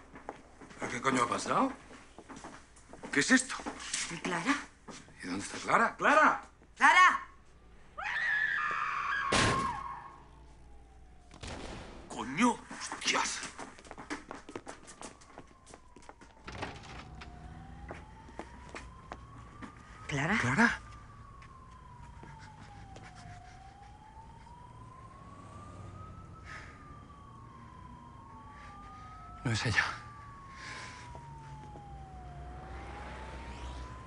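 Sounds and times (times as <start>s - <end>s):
siren wailing: 3.2s - 34.0s
vehicle engine rumble: 16.3s - 20.1s.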